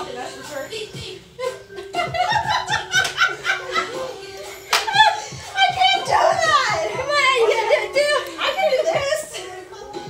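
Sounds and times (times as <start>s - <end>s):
woman laughing: 1.4s - 4.2s.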